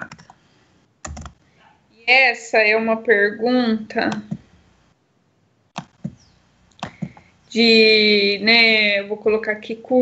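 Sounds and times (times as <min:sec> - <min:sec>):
keyboard typing: 0:00.0 - 0:00.4, 0:01.0 - 0:01.5, 0:04.0 - 0:04.5, 0:05.7 - 0:07.3.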